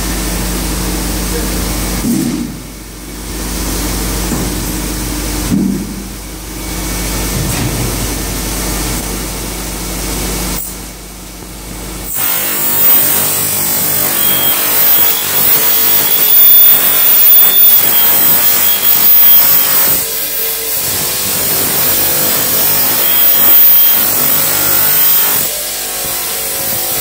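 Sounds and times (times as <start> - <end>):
low machine hum: 0.0 - 12.2
high whine: 0.0 - 27.0
cut-off saw grinding steel: 12.1 - 27.0.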